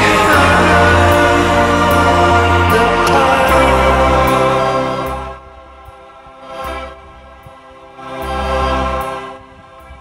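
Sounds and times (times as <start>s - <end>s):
choir holding a chord: 0.0s - 10.0s.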